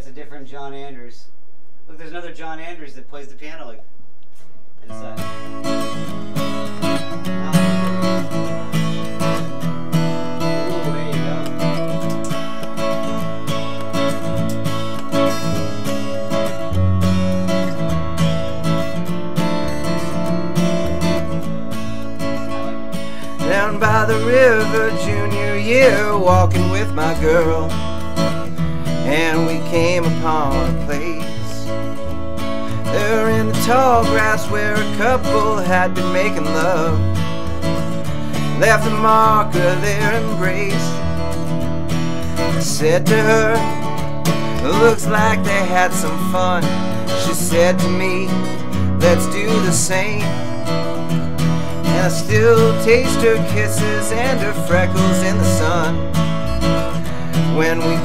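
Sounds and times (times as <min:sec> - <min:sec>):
acoustic guitar strumming: 0:04.8 - 0:58.0.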